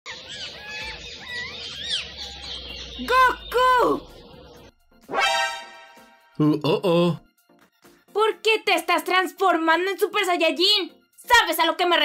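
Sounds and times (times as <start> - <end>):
small birds chirping: 0.1 - 4.8.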